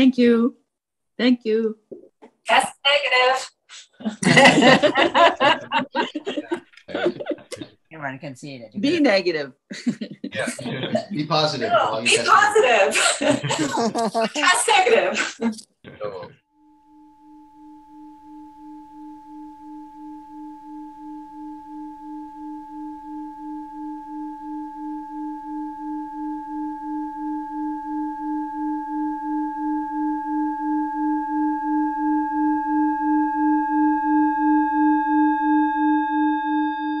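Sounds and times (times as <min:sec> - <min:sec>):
wobbling ringing tone: 0:16.5 - 0:37.0.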